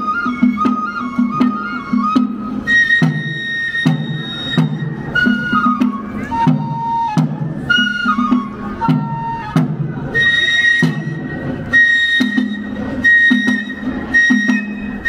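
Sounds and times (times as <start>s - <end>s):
bamboo flute melody: 0.0s - 15.0s
drum beat: 0.4s - 10.1s.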